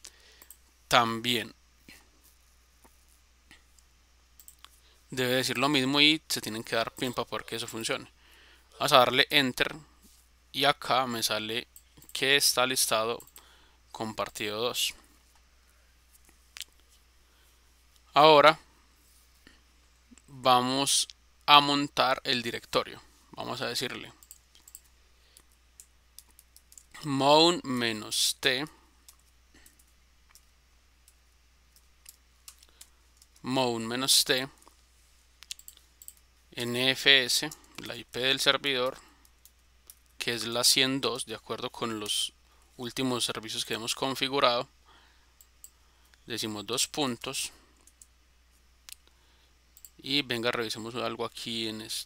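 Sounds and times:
computer mouse clicks: 0:00.3 - 0:00.7, 0:03.5 - 0:04.8, 0:24.2 - 0:27.0, 0:29.0 - 0:33.5, 0:35.4 - 0:36.3, 0:47.8 - 0:48.1, 0:49.8 - 0:50.0.

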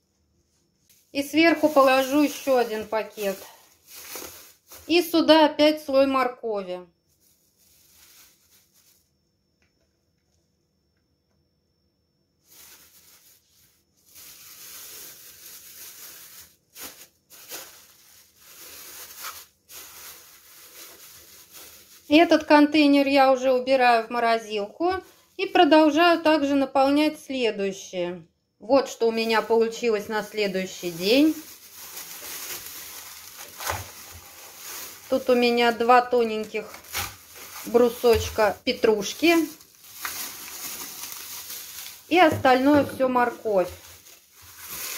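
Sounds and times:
plastic bag crinkling: 0:01.0 - 0:05.3, 0:07.1 - 0:09.1, 0:12.4 - 0:23.0, 0:29.0 - 0:44.9.

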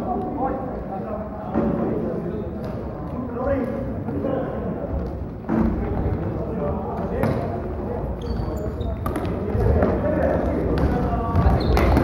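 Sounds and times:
shoe squeaks: 0:08.1 - 0:09.1, 0:11.4 - 0:12.0.

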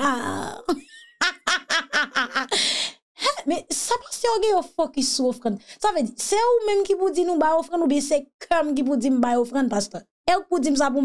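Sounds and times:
woman laughing: 0:00.6 - 0:02.7.

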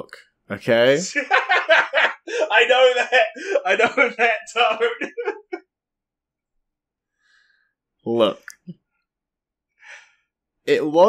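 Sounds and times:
person laughing: 0:01.1 - 0:05.6.

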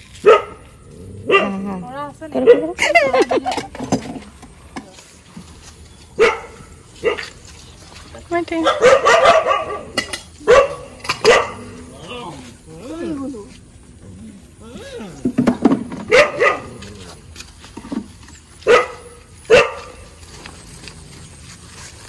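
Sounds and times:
dog barking: 0:00.2 - 0:00.6, 0:01.3 - 0:01.6, 0:06.2 - 0:07.3, 0:08.6 - 0:11.8, 0:16.1 - 0:16.9, 0:18.6 - 0:20.0.

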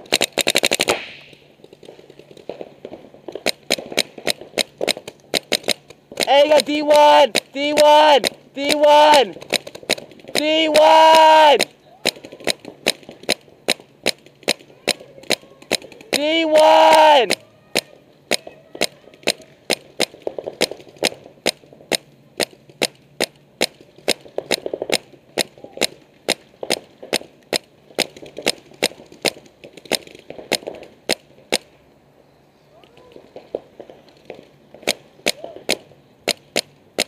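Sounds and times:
paintball markers firing: 0:00.0 - 0:31.7, 0:32.9 - 0:37.0.

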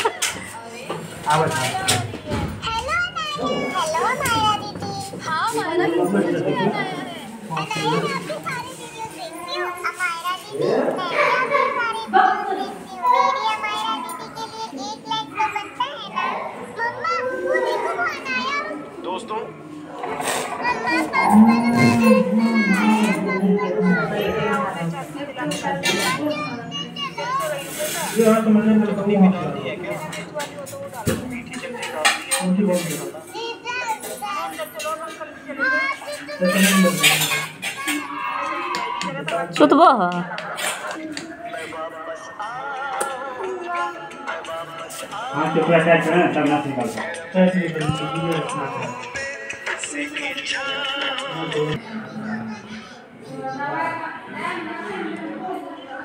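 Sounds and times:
people talking and calling out: 0:00.0 - 0:56.0
young child's high-pitched voice: 0:02.2 - 0:05.9, 0:06.7 - 0:19.0, 0:20.3 - 0:24.6, 0:25.8 - 0:28.1, 0:33.3 - 0:34.9, 0:35.5 - 0:39.0, 0:51.8 - 0:53.9.

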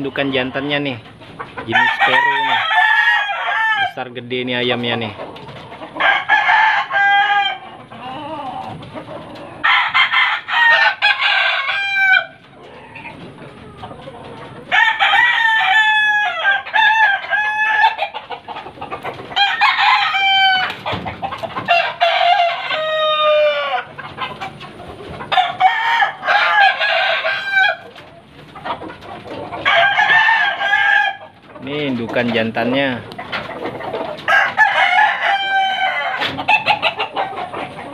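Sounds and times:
roosters crowing: 0:00.0 - 0:37.9.

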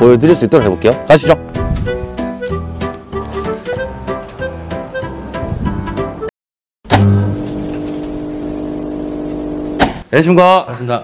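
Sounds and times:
motor-like humming drone: 0:07.0 - 0:09.8.

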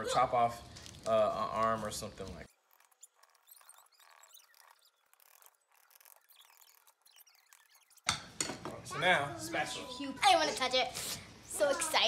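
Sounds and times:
faint scratches: 0:01.1 - 0:08.0
faint high-pitched chirps: 0:02.4 - 0:08.1.

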